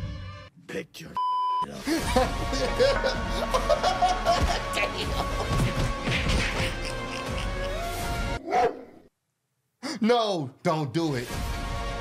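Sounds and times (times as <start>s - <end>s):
electronic censor beep: 1.2s - 1.6s.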